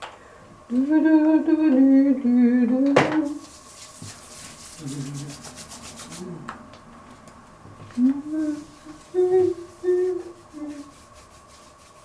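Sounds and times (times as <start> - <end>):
hands rubbing briskly: 3.4 - 6.4, 8.4 - 12.0.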